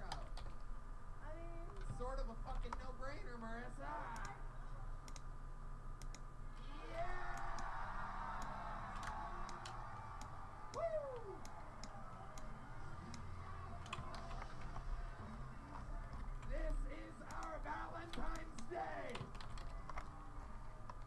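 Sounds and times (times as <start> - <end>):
faint crowd noise: 6.4 - 21.0
computer keyboard and mouse clicks: 13.8 - 14.9, 16.1 - 20.1.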